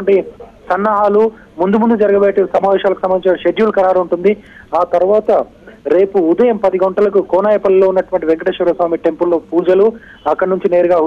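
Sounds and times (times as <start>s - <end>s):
news reporter talking: 0.0s - 11.0s.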